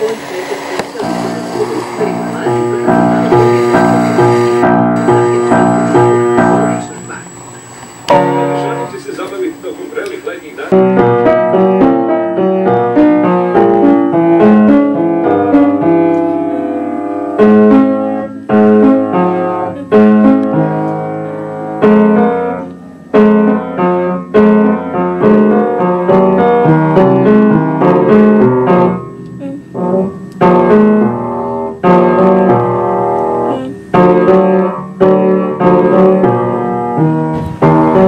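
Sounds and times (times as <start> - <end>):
upright piano playing: 0.0 - 38.0.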